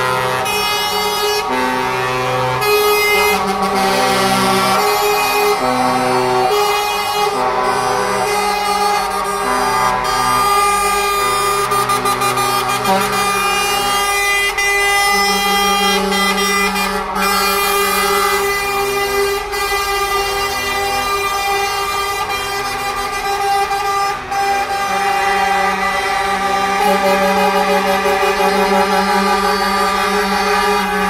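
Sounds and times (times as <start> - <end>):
lorry air horns: 0.0 - 31.0
truck engines: 0.0 - 31.0.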